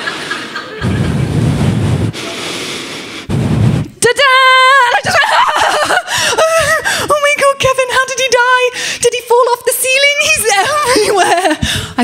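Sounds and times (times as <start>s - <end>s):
audience laughing loudly: 0.0s - 1.4s, 4.9s - 6.7s.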